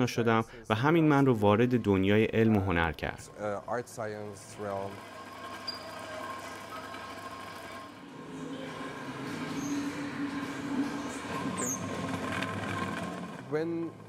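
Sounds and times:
rumbling grinding drone: 0:07.2 - 0:14.0.

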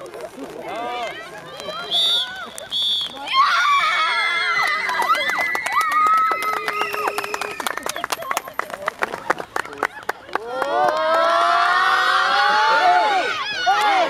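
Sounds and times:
referee's whistle blasts: 0:01.9 - 0:03.3
girls cheering and shouting: 0:03.2 - 0:06.5, 0:10.4 - 0:14.0
hand claps: 0:04.6 - 0:11.2.

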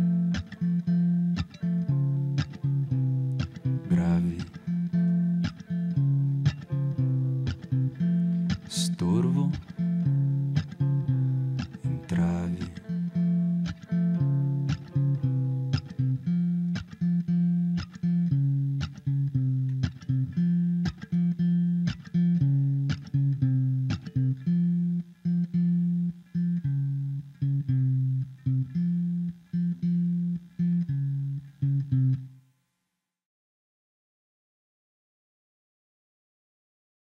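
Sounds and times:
acoustic guitar picking: 0:00.0 - 0:32.1.

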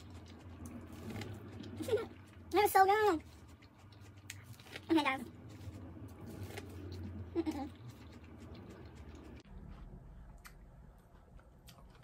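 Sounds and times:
person chewing corn: 0:00.0 - 0:12.0.

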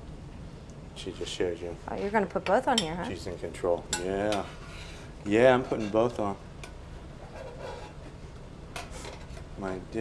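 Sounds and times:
low kitchen hum: 0:00.0 - 0:10.0
metal spoon scraping in pot: 0:04.0 - 0:06.2, 0:07.2 - 0:08.2.

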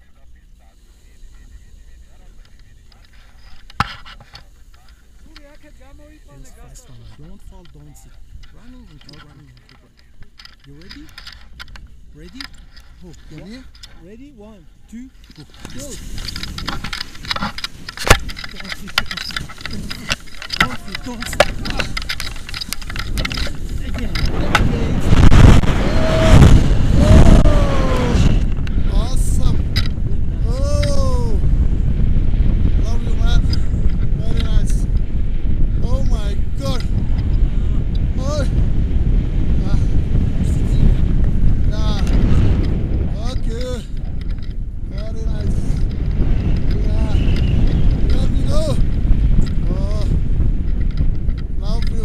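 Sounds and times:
wind buffeting microphone: 0:01.4 - 0:52.0.

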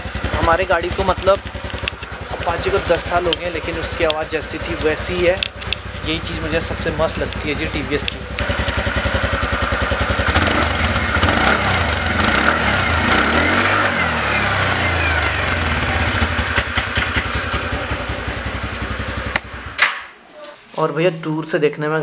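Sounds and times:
scooter engine putter: 0:00.0 - 0:12.6, 0:14.5 - 0:20.6.

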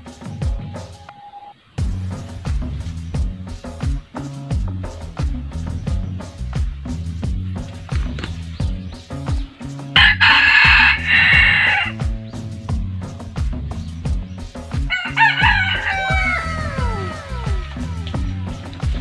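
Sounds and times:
background music with steady beat: 0:00.0 - 0:19.0
rooster crowing: 0:10.0 - 0:12.0, 0:14.9 - 0:18.3.

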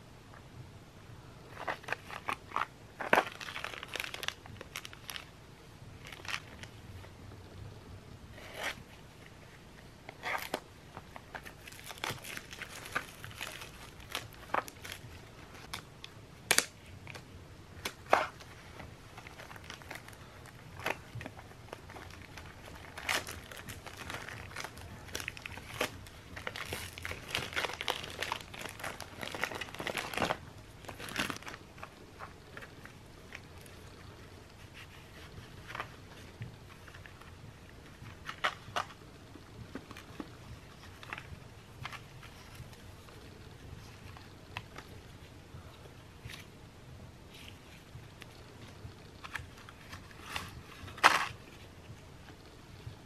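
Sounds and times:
plastic packaging crinkling: 0:01.5 - 0:07.0, 0:10.1 - 0:45.2, 0:47.3 - 0:51.8.

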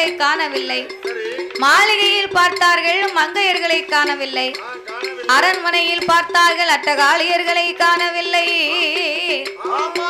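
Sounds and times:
metallic percussion clinking: 0:00.0 - 0:10.0
steady held tone: 0:00.0 - 0:10.0.

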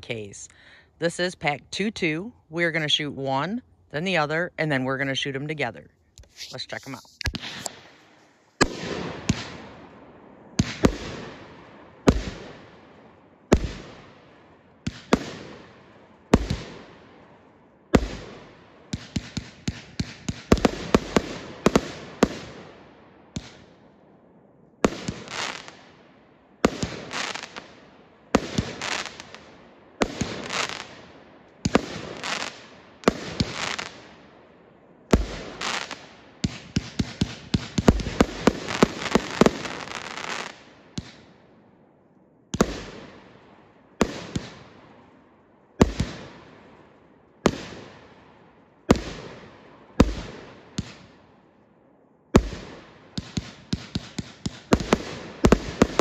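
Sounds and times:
fireworks bangs: 0:06.2 - 0:23.7, 0:24.8 - 0:26.0, 0:26.6 - 0:34.2, 0:35.1 - 0:41.3, 0:42.5 - 0:45.0, 0:45.8 - 0:46.7, 0:47.4 - 0:48.2, 0:48.9 - 0:51.2, 0:52.3 - 0:56.0.

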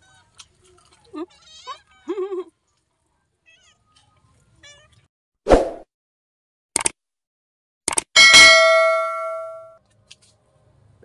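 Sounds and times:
bright bell ding: 0:08.2 - 0:09.8.

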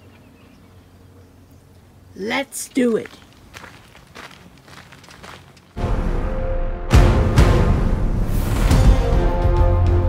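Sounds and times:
footsteps on dirt: 0:02.2 - 0:05.8
background music: 0:05.8 - 0:10.0.

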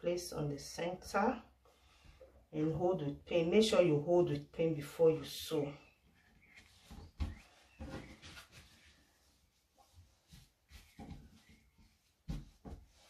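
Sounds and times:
fabric rustling: 0:06.2 - 0:13.0.

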